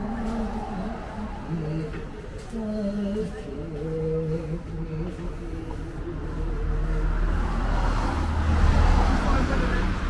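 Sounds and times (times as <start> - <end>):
car passing on street: 0.0 - 2.6, 3.2 - 10.0.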